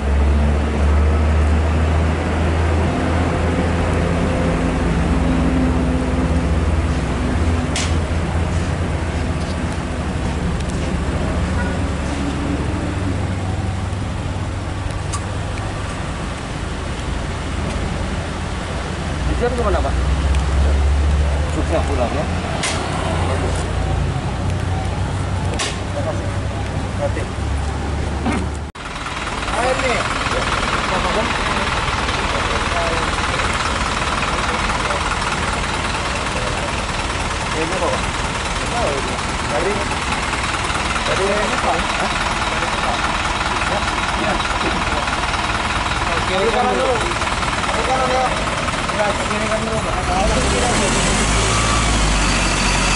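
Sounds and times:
car engines idling: 0.0s - 52.9s.

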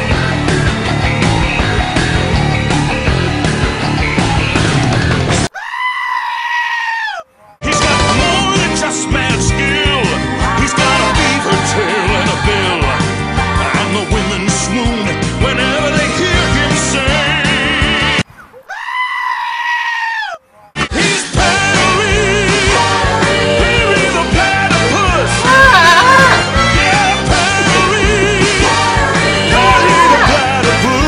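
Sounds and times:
music: 0.0s - 5.5s, 7.6s - 18.2s, 20.8s - 31.0s
goat screaming: 5.5s - 7.6s, 18.4s - 20.7s, 25.4s - 27.1s, 29.5s - 31.0s.

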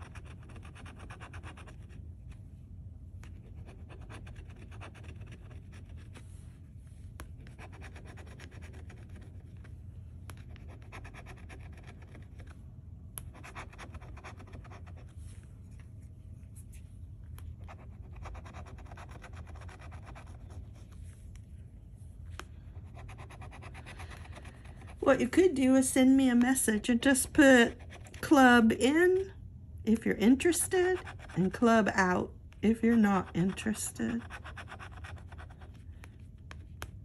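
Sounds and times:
metal scratching a paper ticket: 0.0s - 1.9s, 3.4s - 6.2s, 7.4s - 9.6s, 10.3s - 12.6s, 13.2s - 15.0s, 17.8s - 20.5s, 30.2s - 31.9s, 32.6s - 35.7s.

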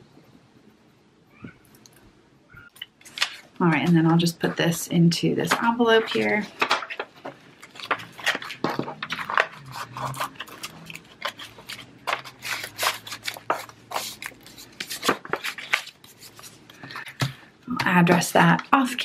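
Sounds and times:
paper rustling and scraping: 5.6s - 17.3s.

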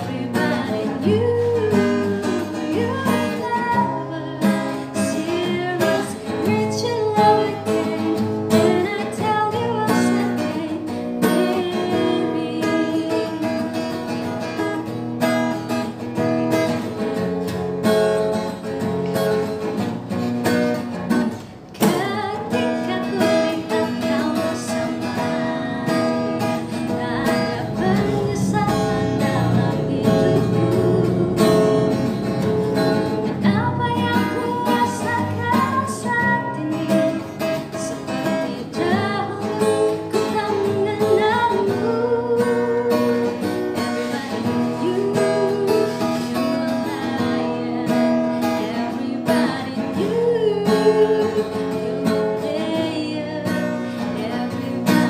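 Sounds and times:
woman singing: 0.0s - 17.3s, 20.8s - 55.0s
acoustic guitar strumming: 0.0s - 55.0s.

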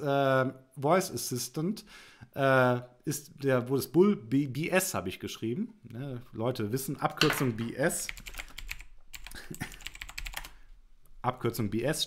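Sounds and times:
computer keyboard typing: 8.1s - 10.6s.

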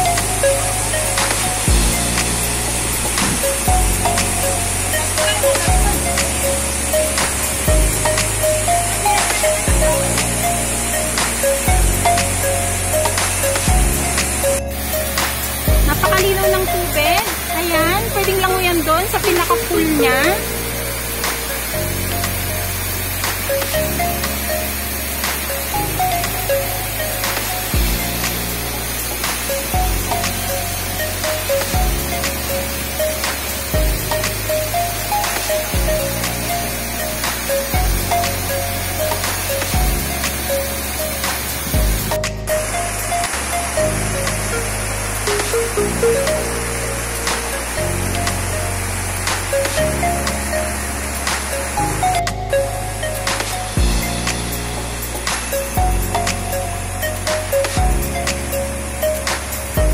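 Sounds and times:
background music with steady beat: 0.0s - 59.9s
waterfall hiss: 0.0s - 59.9s.

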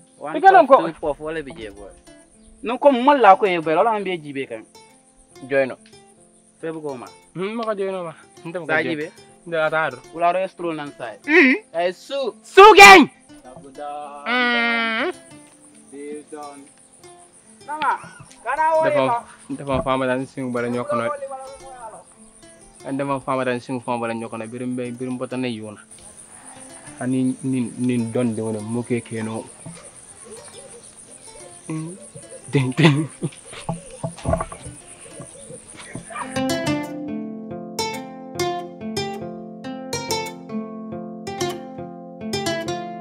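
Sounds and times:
insects trilling: 0.0s - 36.9s
crickets chirring: 0.0s - 37.0s
short dull thumps: 19.5s - 20.2s, 31.7s - 36.5s.

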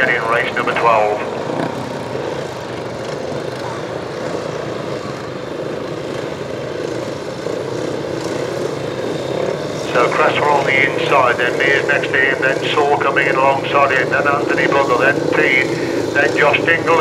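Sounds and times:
distant motorcycle engines droning: 0.0s - 17.0s.

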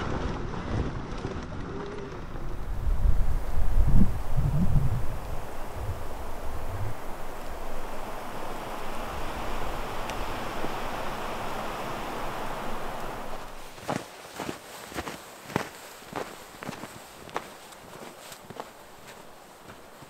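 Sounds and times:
steady rushing noise: 2.1s - 20.0s
footsteps crunching in snow: 9.6s - 20.0s.

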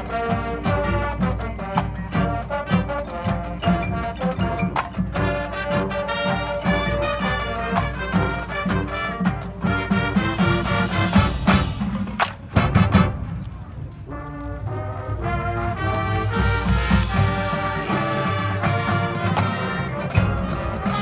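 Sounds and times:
marching band playing: 0.0s - 21.0s.

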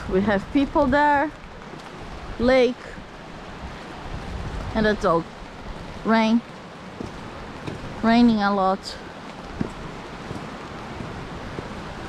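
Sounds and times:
falling rain: 0.0s - 12.0s
river running over rocks: 0.0s - 12.0s
wind rumbling on microphone: 0.0s - 12.0s.

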